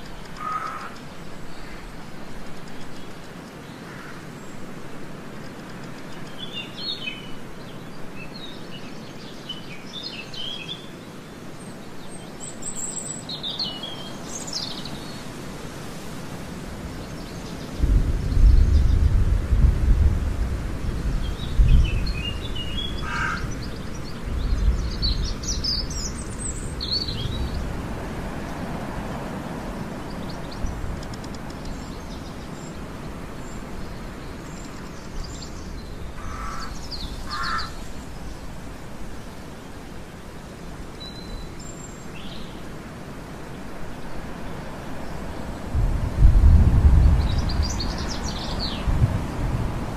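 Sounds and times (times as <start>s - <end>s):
background hiss: 0.0s - 49.9s
birds chirping: 21.1s - 45.7s, 47.0s - 49.5s.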